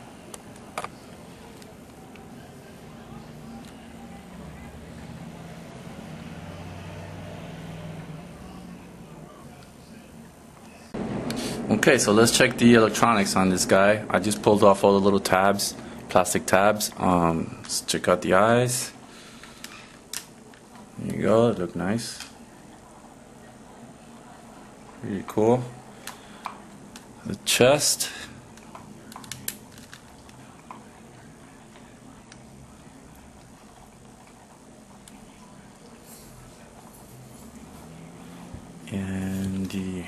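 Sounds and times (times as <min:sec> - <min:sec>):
room hiss: 0:00.0 - 0:20.1
handling plastic action figure: 0:29.1 - 0:30.4.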